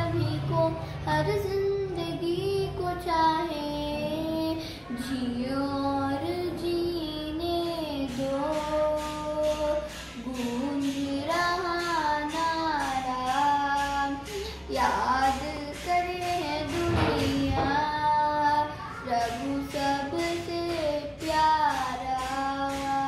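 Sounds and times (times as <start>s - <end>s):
girl singing devotional song: 0.0s - 23.0s
accompaniment with steady beat: 7.4s - 23.0s.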